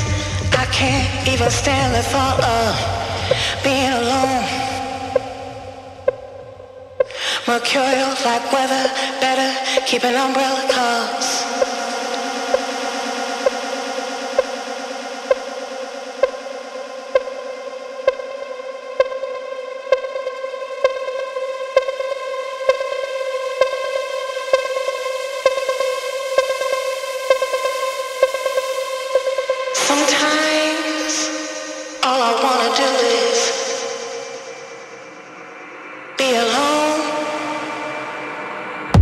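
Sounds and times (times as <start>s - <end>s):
kick drum: 0.4s - 3.8s.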